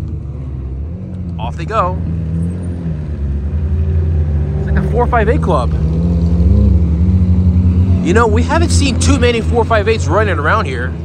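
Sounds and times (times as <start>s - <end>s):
car engine running at low revs: 0.0s - 11.0s.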